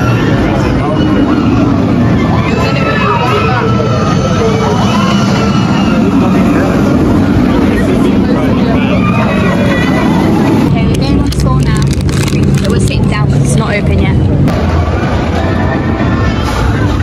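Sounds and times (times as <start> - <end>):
people's voices: 0.0 - 17.0
roller coaster rumbling on track: 0.0 - 17.0.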